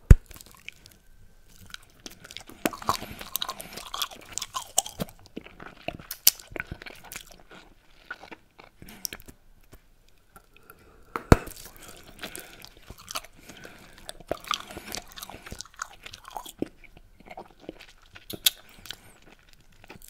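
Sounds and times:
chewing bubblegum with crackles: 0.1 - 20.0.

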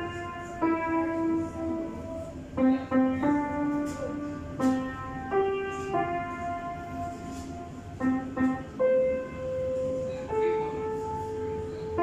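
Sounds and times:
upright piano notes: 0.0 - 12.0.

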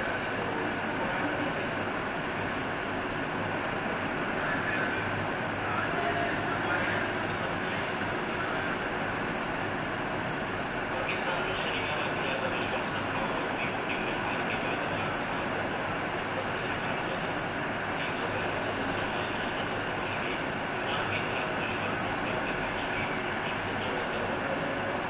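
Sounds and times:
faint voices: 0.0 - 25.0
steady background noise: 0.0 - 25.0.

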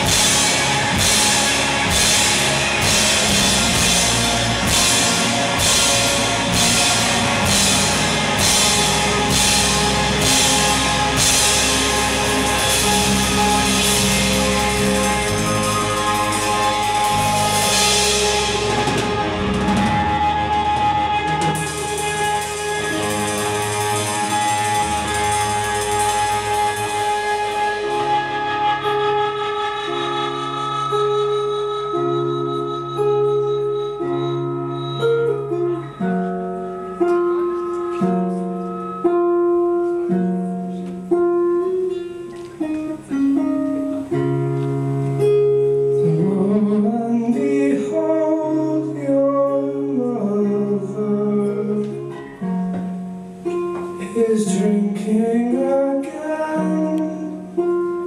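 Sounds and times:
cymbal wash: 0.0 - 29.4
held rock band chord: 0.0 - 30.5
guitar picking single notes: 0.0 - 58.0.

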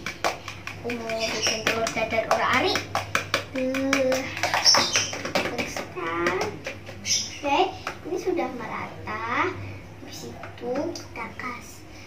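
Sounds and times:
child talking: 0.8 - 11.9.

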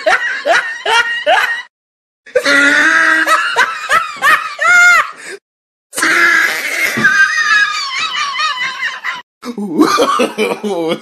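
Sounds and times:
person laughing: 6.8 - 11.0.

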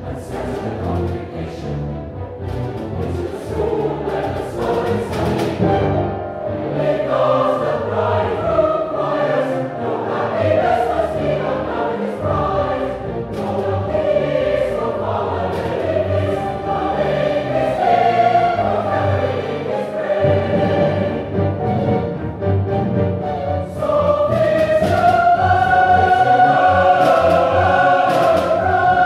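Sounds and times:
choir singing: 0.0 - 29.0
low accompaniment: 0.0 - 29.0.

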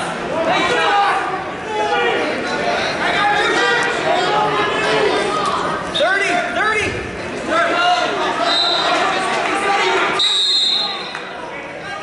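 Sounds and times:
voices calling out in gym: 0.0 - 12.0
shrill whistle blast: 10.2 - 11.1.

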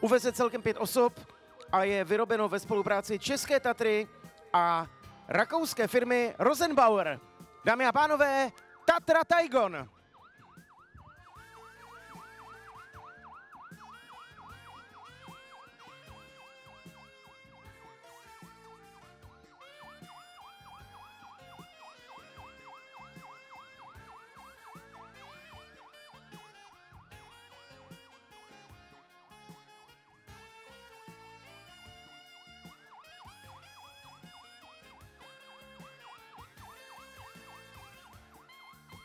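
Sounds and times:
background music: 0.0 - 39.0
fire truck siren yelping: 0.0 - 39.0.

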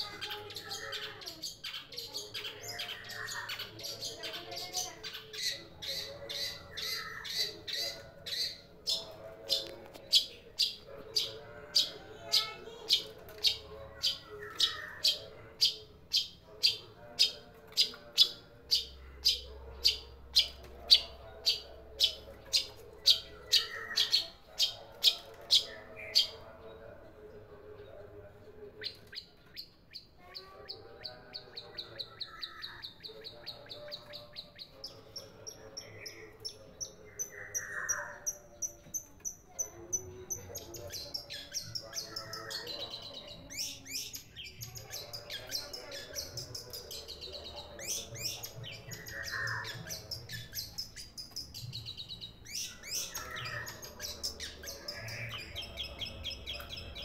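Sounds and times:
bird giving harsh calls: 0.0 - 26.4, 43.4 - 51.7.

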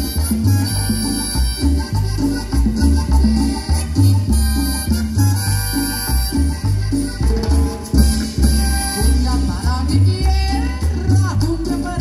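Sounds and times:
bouncing bass line: 0.0 - 12.0
live band over loudspeakers: 0.0 - 12.0
shaker-like percussion: 0.0 - 12.0.

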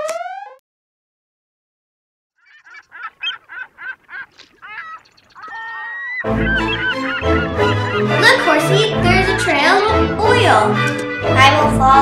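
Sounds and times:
short repeated bird calls: 2.4 - 7.4.

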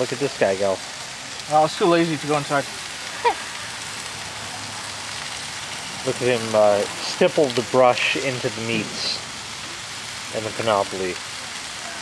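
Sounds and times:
food sizzling on grill: 0.0 - 12.0.

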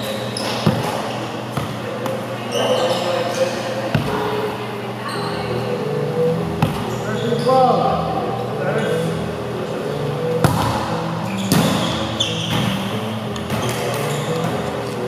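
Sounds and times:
players calling out: 2.3 - 15.0
hands smacking volleyball: 4.0 - 4.2.

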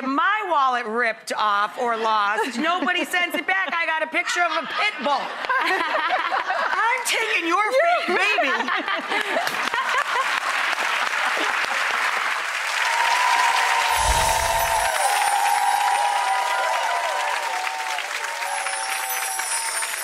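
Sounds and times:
audience applauding: 9.0 - 20.0
low boom: 13.9 - 15.6.

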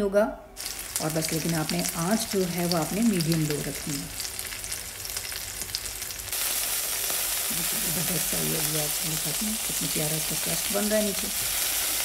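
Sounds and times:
meat sizzling in a pan: 0.6 - 12.0.

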